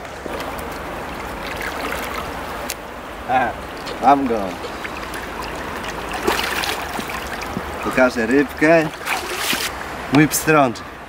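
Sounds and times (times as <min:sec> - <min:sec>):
river current rushing: 0:00.0 - 0:11.0.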